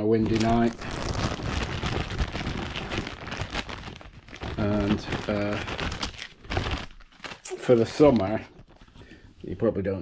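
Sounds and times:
plastic bag crinkling: 0.0 - 9.0.

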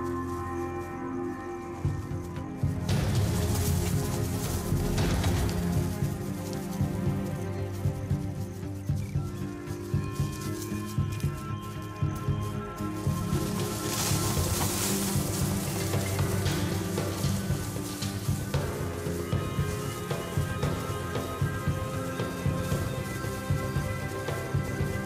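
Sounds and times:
dramatic background music: 0.0 - 25.0
pulsing beat: 1.8 - 25.0.

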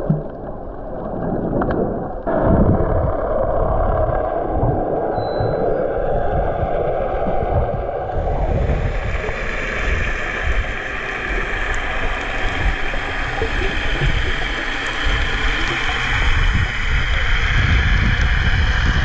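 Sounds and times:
muffled underwater rushing: 0.0 - 19.0.

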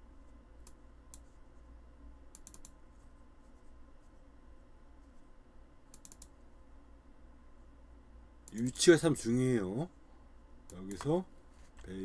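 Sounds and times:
low steady hum: 0.0 - 12.0
computer mouse clicks: 0.6 - 1.4, 2.3 - 2.8, 5.9 - 6.4.

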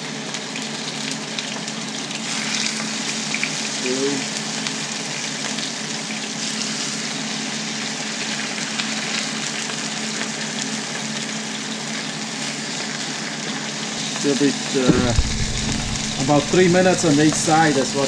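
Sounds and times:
fish fillets sizzling in a frying pan: 0.0 - 18.0.

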